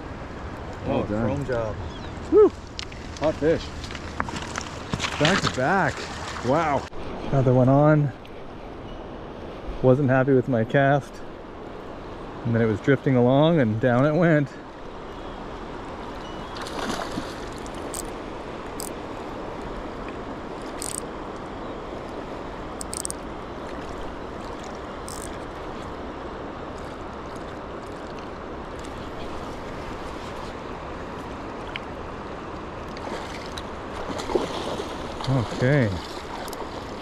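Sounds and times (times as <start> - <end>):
river current rushing: 11.2 - 37.0
faint ticks: 20.0 - 21.0, 22.8 - 23.8, 25.1 - 25.4.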